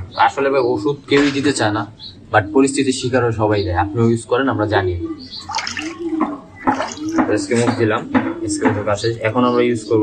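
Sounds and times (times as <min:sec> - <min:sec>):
running water: 0:05.2 - 0:07.8.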